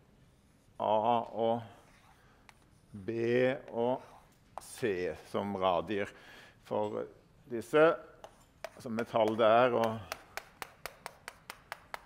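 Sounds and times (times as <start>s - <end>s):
chalk tapping on blackboard: 8.2s - 12.0s.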